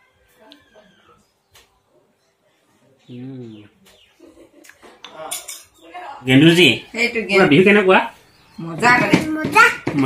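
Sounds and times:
metal spoon clinking on plate: 5.2 - 5.8.

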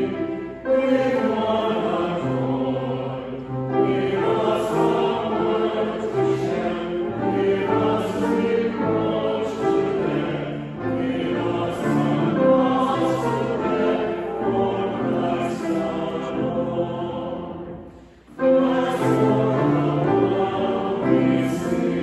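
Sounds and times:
choir singing a hymn: 0.0 - 22.0
grand piano accompaniment: 0.0 - 22.0.

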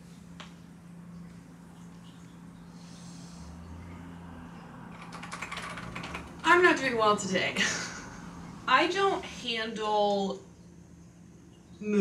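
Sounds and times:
typing on a keyboard: 4.9 - 6.5
woman's voice: 6.4 - 8.0, 8.6 - 10.4.

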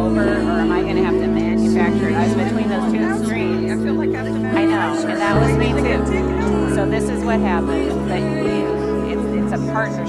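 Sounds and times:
voices speaking and praying: 0.0 - 10.0
worship band holding chords: 0.0 - 10.0.

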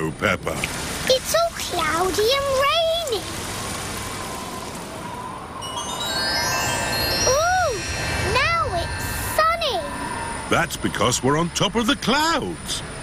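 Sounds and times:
cartoon plane hiss and rumble: 0.9 - 13.0
sustained chime-like notes: 4.0 - 12.1.

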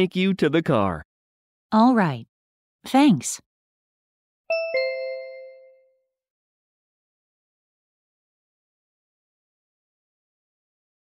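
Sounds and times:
two-note descending chime: 4.5 - 5.9.

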